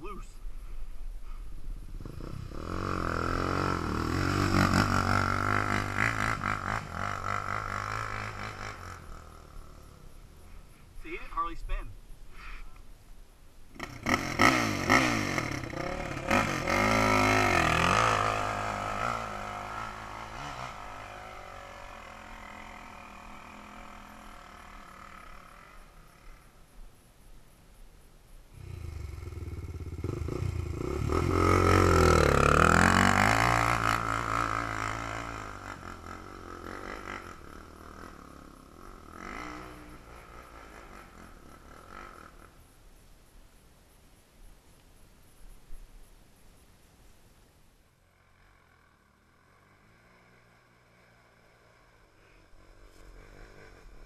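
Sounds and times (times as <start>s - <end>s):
dirt bike engine revving: 1.8s - 11.4s, 13.7s - 26.5s, 28.6s - 42.6s, 48.2s - 54.0s.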